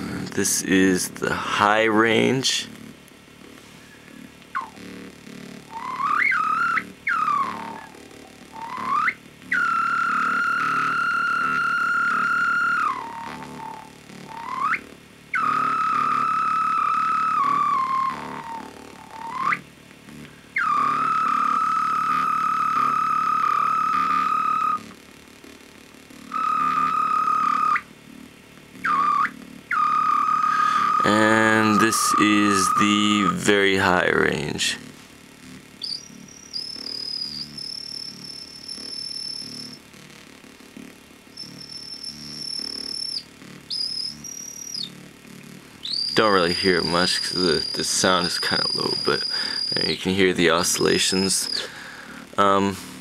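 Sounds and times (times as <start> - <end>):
synth bass tone: 5.6 - 19.6
high whistle-like synth tone: 5.7 - 19.6, 20.6 - 24.8, 26.3 - 27.8, 28.8 - 33.6, 35.8 - 39.8, 41.4 - 44.9, 45.8 - 51.7.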